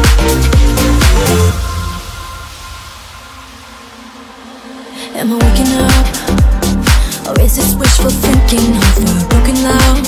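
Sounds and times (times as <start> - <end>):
hissing noise wash: 0.8 - 7.3.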